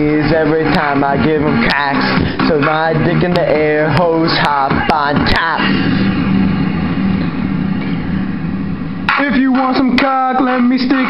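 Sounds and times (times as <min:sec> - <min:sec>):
buzzing synth beat: 0:00.0 - 0:11.0.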